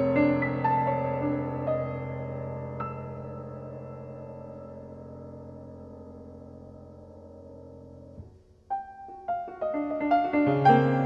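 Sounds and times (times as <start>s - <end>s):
sustained piano chord: 0.0s - 8.3s.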